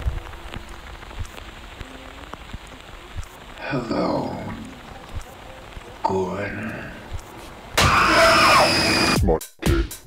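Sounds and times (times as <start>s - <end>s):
crackling rain-like noise: 0.0s - 9.2s
small clicks: 0.5s - 3.6s.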